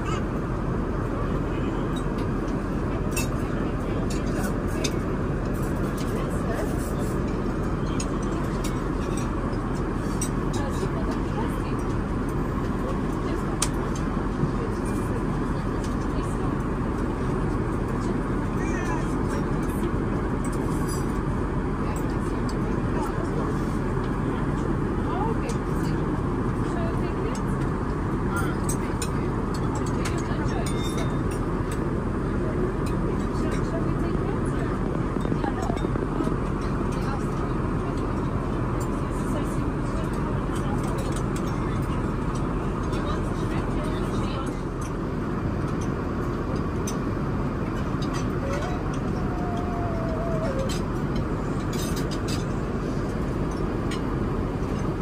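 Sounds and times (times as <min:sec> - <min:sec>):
airplane cabin engine rumble: 0:00.0 - 0:55.0
faint voices: 0:00.0 - 0:55.0.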